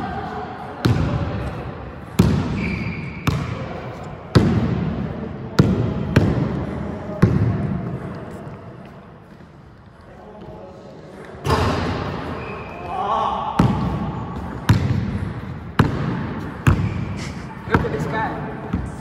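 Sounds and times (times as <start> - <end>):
basketball bouncing on wooden court: 2.2 - 3.7, 4.3 - 4.9, 5.6 - 6.6, 7.2 - 7.8, 13.6 - 17.0, 17.7 - 19.0.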